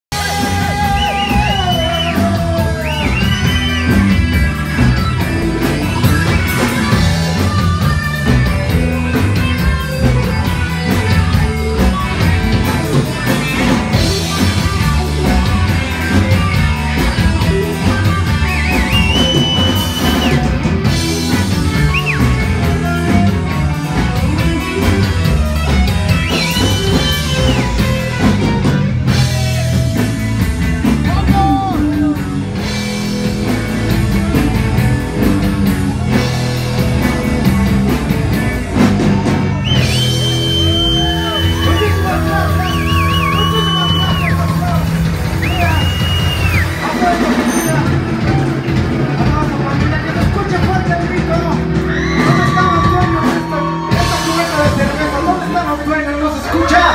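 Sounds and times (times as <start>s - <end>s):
drum kit: 0.1s - 56.9s
electric guitar: 0.1s - 56.9s
heavy bass line: 0.1s - 56.9s
person singing: 0.2s - 3.4s.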